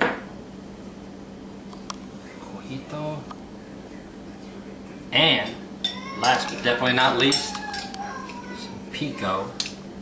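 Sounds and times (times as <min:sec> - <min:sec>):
metal utensils clinking on dishes: 0:05.4 - 0:08.4.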